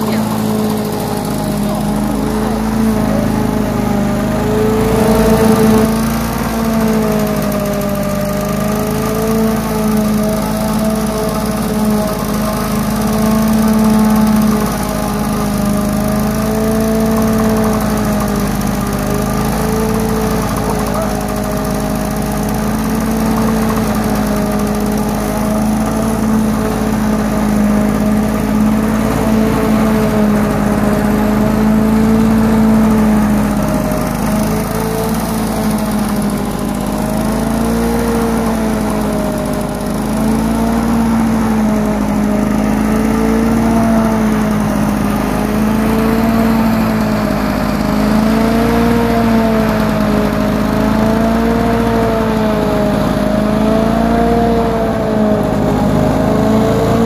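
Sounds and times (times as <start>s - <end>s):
lawn mower engine running: 0.0s - 57.0s.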